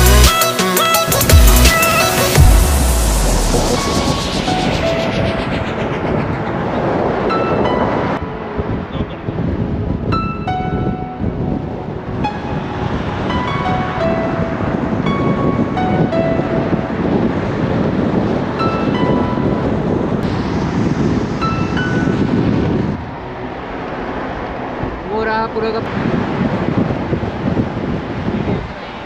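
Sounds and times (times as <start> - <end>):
wind rush: 0.9 - 29.0
car road noise: 1.2 - 29.0.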